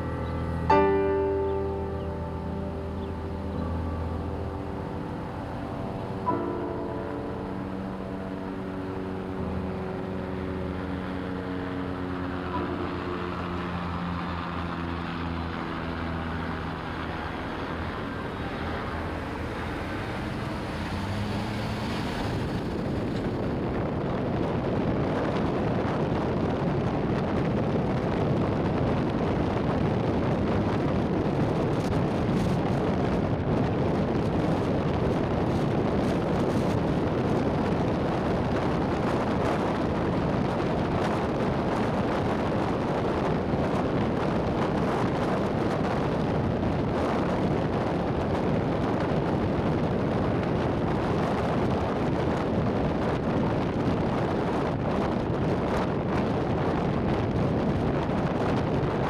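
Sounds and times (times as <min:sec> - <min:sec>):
sustained musical chords: 0:00.0 - 0:22.2
car driving with road noise: 0:00.0 - 0:59.0.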